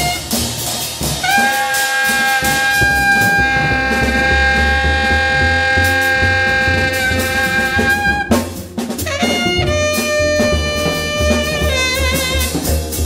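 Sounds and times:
saxophone holding high note: 0:00.0 - 0:00.5, 0:01.2 - 0:12.8
double bass: 0:00.0 - 0:13.0
jazz drums: 0:00.0 - 0:13.0.

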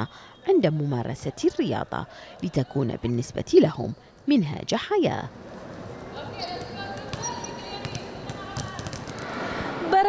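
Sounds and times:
basketballs bouncing on a court: 0:06.2 - 0:09.4.

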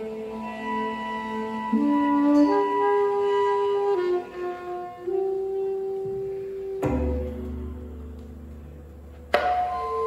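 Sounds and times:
soprano saxophone notes: 0:00.0 - 0:10.0.

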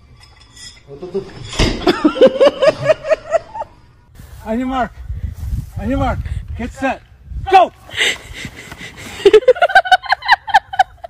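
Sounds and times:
laughter: 0:01.1 - 0:03.9, 0:08.6 - 0:11.0.

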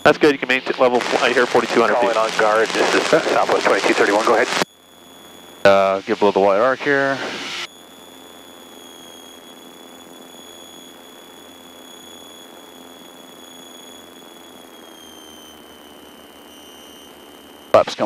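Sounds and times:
aircraft engines droning in cabin: 0:00.0 - 0:18.0
thin high whine: 0:00.0 - 0:18.0.

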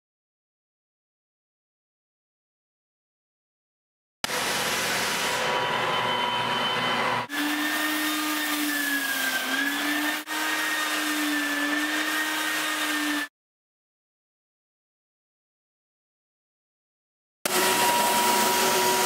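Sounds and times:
edge sander grinding: 0:04.3 - 0:13.3, 0:17.5 - 0:19.0
floor sander motor hum: 0:04.3 - 0:13.3, 0:17.5 - 0:19.0.

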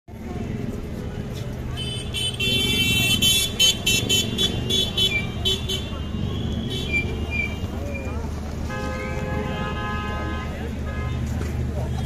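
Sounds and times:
crowd chatter: 0:00.1 - 0:12.0
passing traffic: 0:00.1 - 0:12.0.

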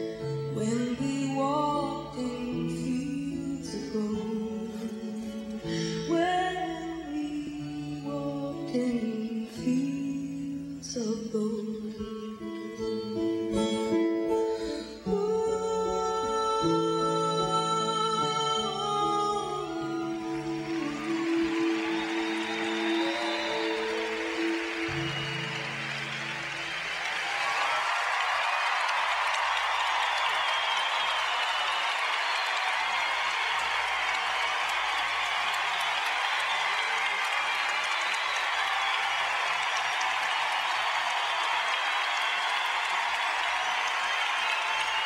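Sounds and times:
slow ballad music: 0:00.0 - 0:26.9
crowd applauding: 0:18.5 - 0:45.0.

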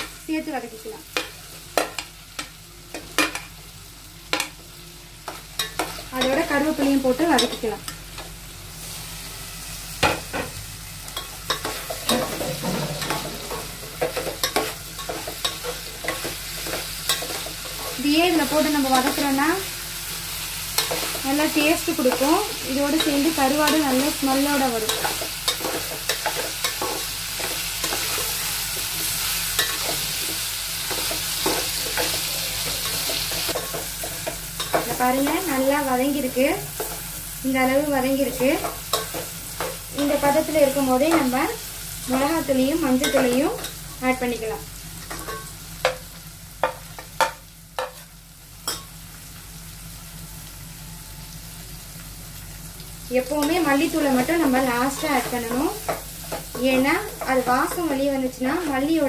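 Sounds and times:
onions sizzling in a pot: 0:00.0 - 0:59.0.

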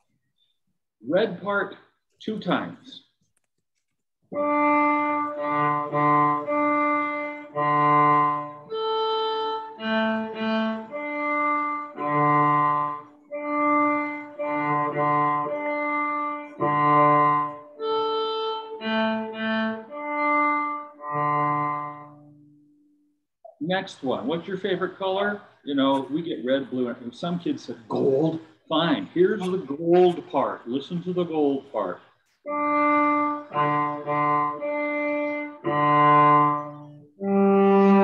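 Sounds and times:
cello playing bowed notes: 0:04.3 - 0:22.6, 0:32.5 - 0:38.0.

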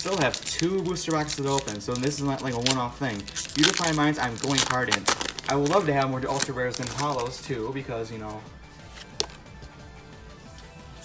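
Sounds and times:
quiet background music: 0:00.0 - 0:11.0
sharp click of card pack: 0:09.0 - 0:09.4.

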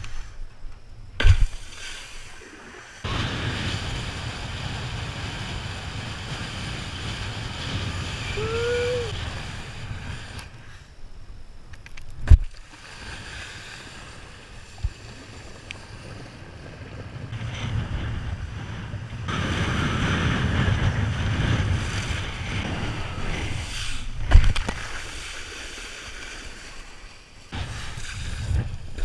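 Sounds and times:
sharp thumps: 0:00.7 - 0:01.7
board hissing across water: 0:01.4 - 0:10.9, 0:12.7 - 0:29.0
wind buffeting camera: 0:03.0 - 0:12.5, 0:13.2 - 0:25.4, 0:27.5 - 0:29.0.

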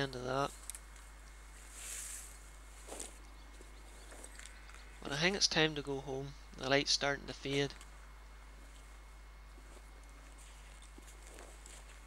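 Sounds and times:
rustling in long grass: 0:01.3 - 0:04.6.

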